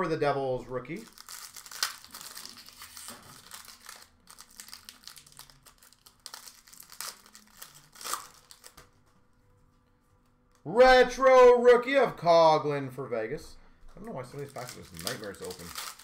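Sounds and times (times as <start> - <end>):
foil wrapper crinkling and tearing: 0.9 - 9.0, 14.1 - 16.0.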